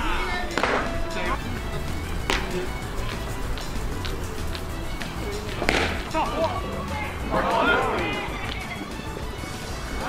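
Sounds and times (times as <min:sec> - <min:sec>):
background music: 0:00.0 - 0:10.0
people shouting: 0:00.0 - 0:10.0
baseball bat hitting ball: 0:00.4 - 0:06.8.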